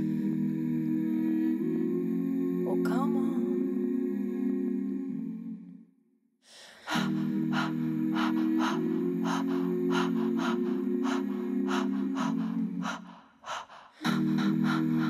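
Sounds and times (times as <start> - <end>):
breathy vocal percussion beats: 0.0 - 5.4, 6.5 - 15.0.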